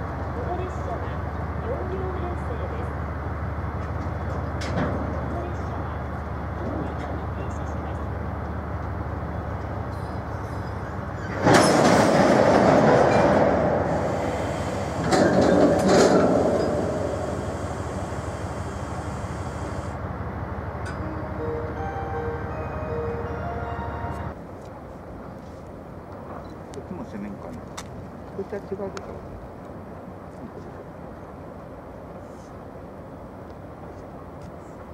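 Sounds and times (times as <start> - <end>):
freight train rolling: 0.0 - 34.9.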